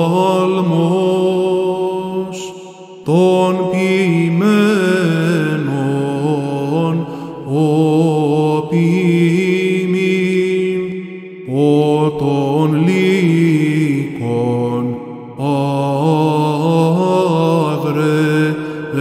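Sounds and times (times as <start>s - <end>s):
man chanting a hymn: 0.0s - 19.0s.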